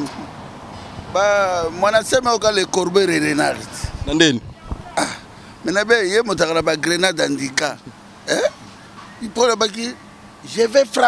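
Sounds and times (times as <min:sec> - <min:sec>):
man speaking: 0:01.1 - 0:08.6, 0:09.2 - 0:11.0.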